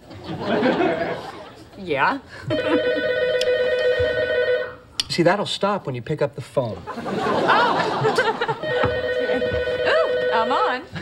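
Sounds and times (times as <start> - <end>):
desk telephone ringing: 2.5 - 4.8, 8.5 - 10.9.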